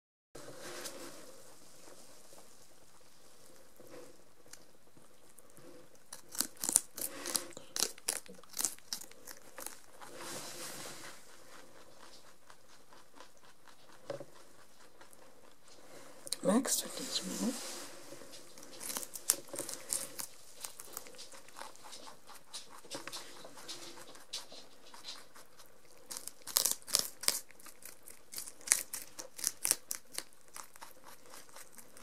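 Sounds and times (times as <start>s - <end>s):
rabbits chewing celery: 0.5s - 32.0s.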